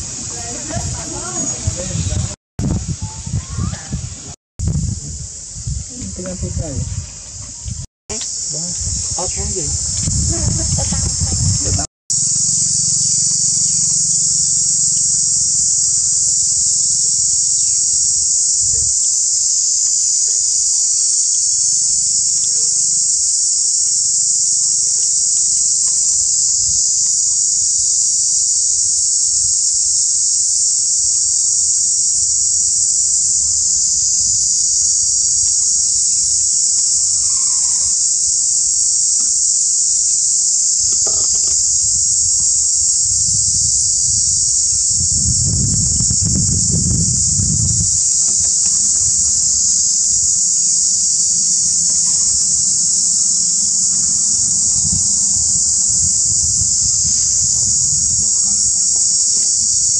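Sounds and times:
insects buzzing: 0:00.0 - 0:59.9.

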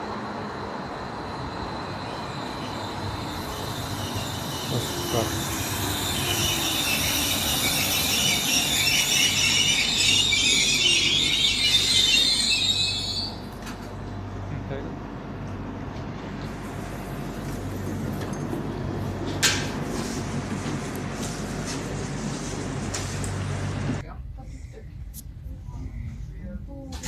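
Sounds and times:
low steady train hum: 0:00.0 - 0:27.0
train brakes squealing: 0:01.0 - 0:13.6.

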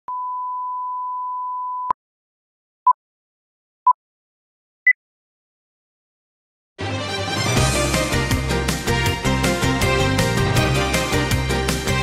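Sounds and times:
steady test tone beep: 0:00.1 - 0:02.0.

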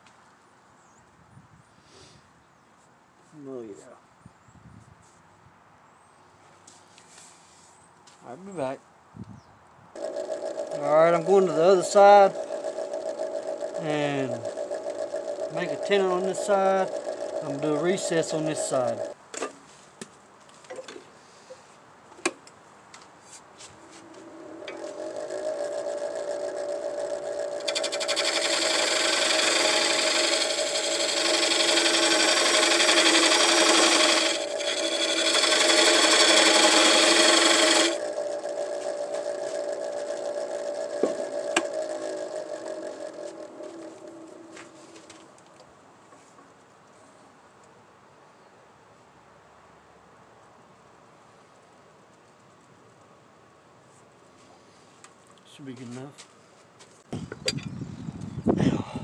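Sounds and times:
lathe motor humming: 0:10.0 - 0:19.2, 0:23.8 - 0:45.3
gouge cutting wood hiss: 0:27.6 - 0:38.2.

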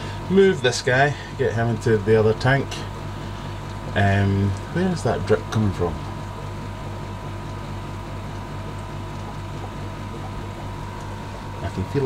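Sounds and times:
aquarium equipment humming: 0:00.0 - 0:12.0.

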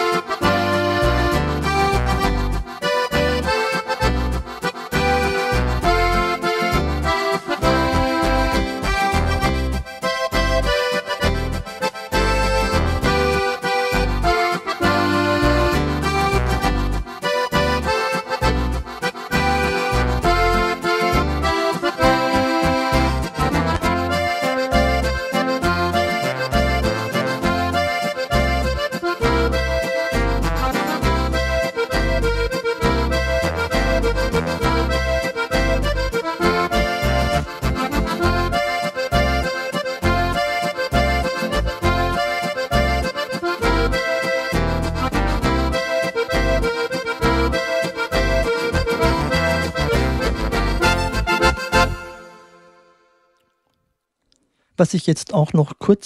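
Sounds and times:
oom-pah bass: 0:00.0 - 0:52.6
accordion waltz on keyboard: 0:00.0 - 0:53.6.

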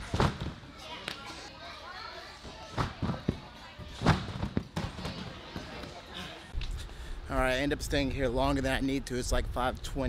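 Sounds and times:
background chatter: 0:00.0 - 0:10.0
trampoline bed thumping: 0:02.7 - 0:05.7.

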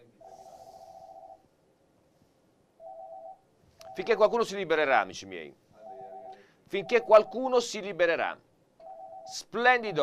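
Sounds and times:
electronic telephone ringing: 0:00.3 - 0:01.4, 0:02.8 - 0:04.2, 0:05.8 - 0:07.5, 0:08.8 - 0:09.4.

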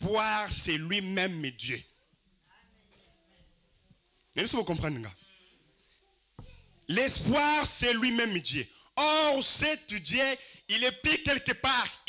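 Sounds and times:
man calling into a microphone: 0:00.0 - 0:01.9, 0:04.3 - 0:05.2, 0:06.9 - 0:12.0.

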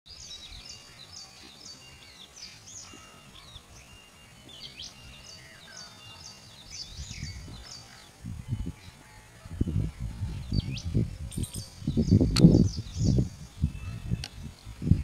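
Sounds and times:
small birds chirping: 0:00.1 - 0:15.0.

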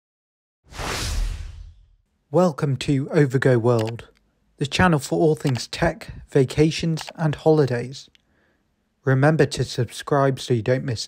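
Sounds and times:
whoosh transition effect: 0:00.7 - 0:02.0.

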